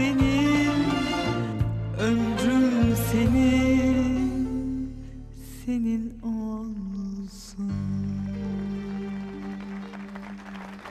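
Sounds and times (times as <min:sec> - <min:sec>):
string ensemble holding a chord: 0:00.0 - 0:04.8, 0:07.9 - 0:10.9.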